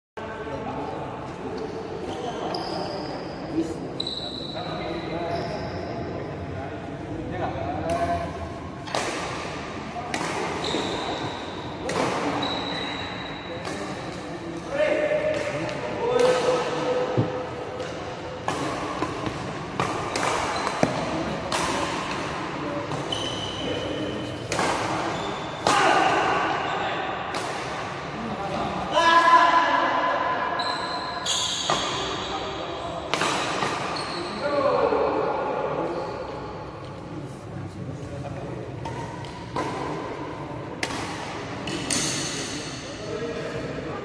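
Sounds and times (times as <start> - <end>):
rackets hitting shuttlecock: 8.8 - 12.4, 15.0 - 23.1, 24.4 - 26.3, 27.3 - 28.0, 33.1 - 34.0, 38.8 - 42.8.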